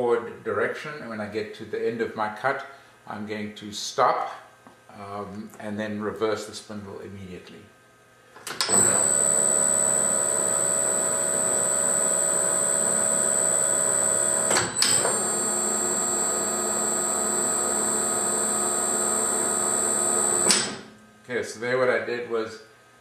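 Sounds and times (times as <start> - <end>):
metal lathe whining: 8.6 - 20.8.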